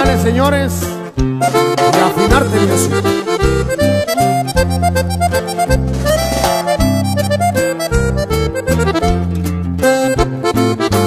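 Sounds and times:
accordion melody: 0:00.0 - 0:11.0
bass: 0:00.0 - 0:11.0
strummed guitar: 0:00.0 - 0:11.0.

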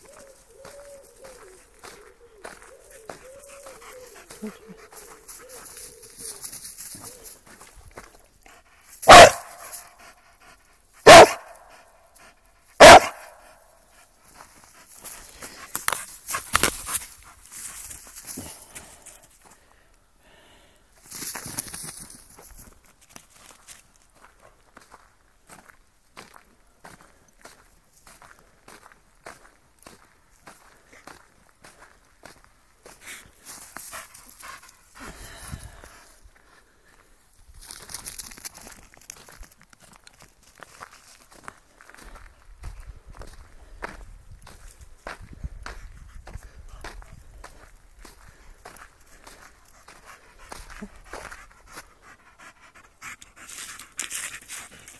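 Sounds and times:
dog barking: 0:09.0 - 0:09.7, 0:11.0 - 0:11.7, 0:12.8 - 0:13.5.

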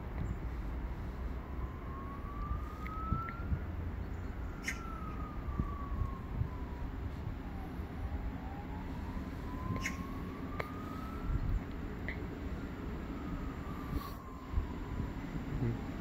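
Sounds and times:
distant siren wailing: 0:00.0 - 0:16.0
steady low rumble: 0:00.0 - 0:16.0.

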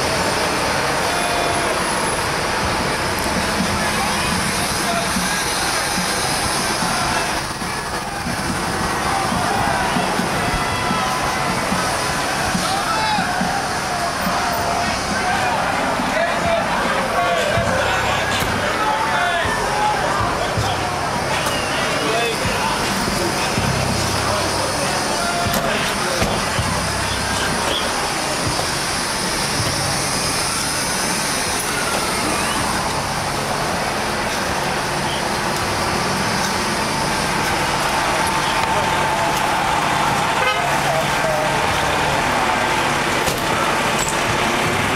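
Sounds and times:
car horns: 0:00.0 - 0:44.9
traffic: 0:00.0 - 0:44.9
voices: 0:00.0 - 0:44.9.

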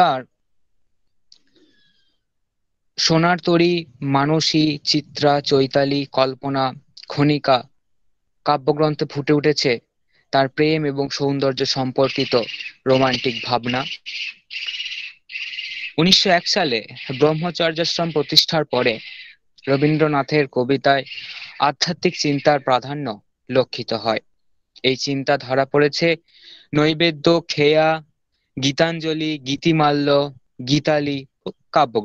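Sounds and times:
person speaking syllable: 0:11.0 - 0:14.1, 0:14.8 - 0:23.6
high-pitched chirring: 0:11.8 - 0:22.9.

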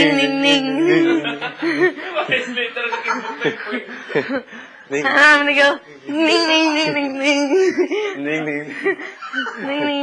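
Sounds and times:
people talking: 0:00.0 - 0:03.9, 0:04.9 - 0:10.0
people chuckling: 0:00.8 - 0:04.7, 0:06.8 - 0:10.0.

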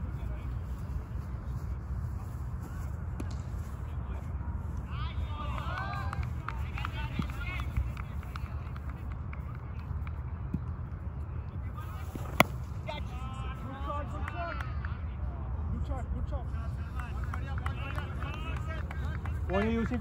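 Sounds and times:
steady low rumble: 0:00.0 - 0:14.2.

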